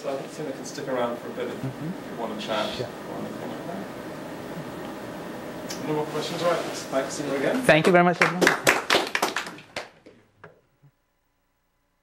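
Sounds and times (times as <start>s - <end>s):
audience applause: 7.8s - 10.0s.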